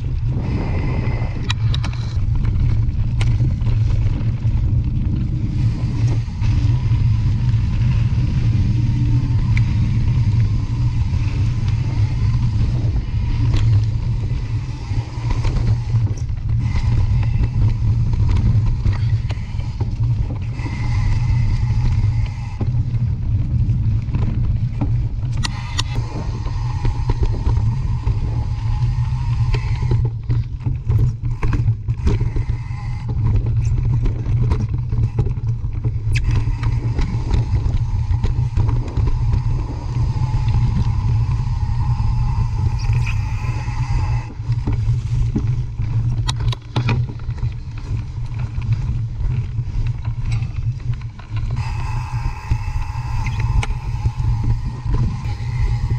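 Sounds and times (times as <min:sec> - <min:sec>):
bike clicks and rattles: 0:00.0 - 0:55.9
mountain bike low rumble: 0:00.0 - 0:55.9.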